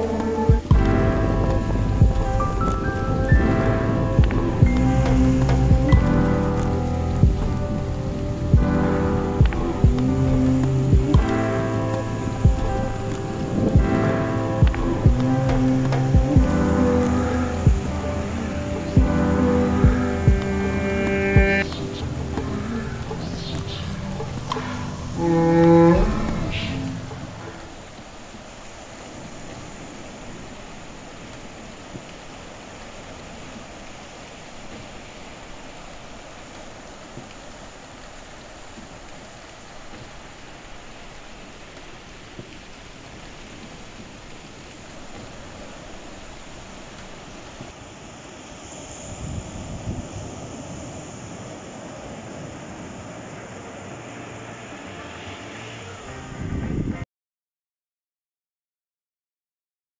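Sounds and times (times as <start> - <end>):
wind buffeting microphone: 0.0 - 25.2
surf washing up beach: 0.0 - 56.1.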